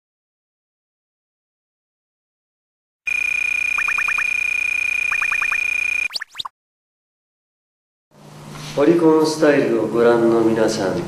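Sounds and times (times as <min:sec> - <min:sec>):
short electronic chirps: 0:03.1 - 0:06.5
steady high electronic beep: 0:03.1 - 0:06.5
fast rising electronic sweeps: 0:03.2 - 0:06.5.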